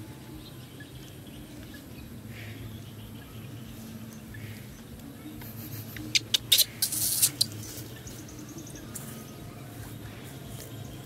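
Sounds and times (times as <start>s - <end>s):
baby macaque squeaking: 5.4s - 9.2s.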